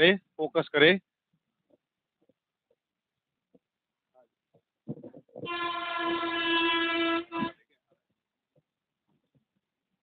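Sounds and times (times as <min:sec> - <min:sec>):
vehicle horn long note: 0:05.4 - 0:07.7.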